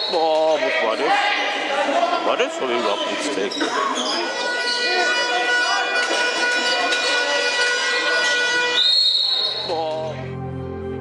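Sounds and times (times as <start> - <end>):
players' voices: 0.0 - 8.6
high whistle blast: 4.2 - 9.7.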